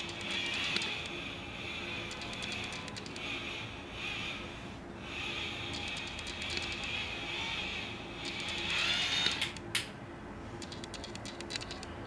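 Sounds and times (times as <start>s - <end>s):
handling clicks: 10.6s - 11.9s.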